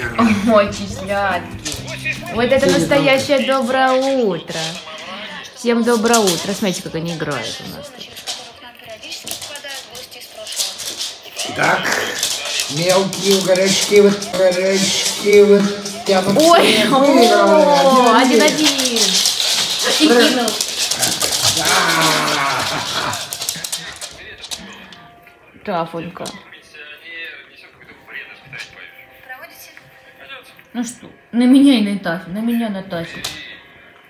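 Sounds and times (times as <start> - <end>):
dog claws tapping on floor: 0.4 - 5.1, 5.8 - 25.1, 26.0 - 26.4.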